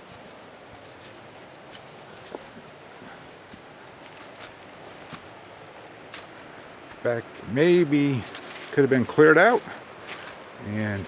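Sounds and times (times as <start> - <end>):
footsteps on dry leaves: 0.0 - 7.0, 8.1 - 11.0.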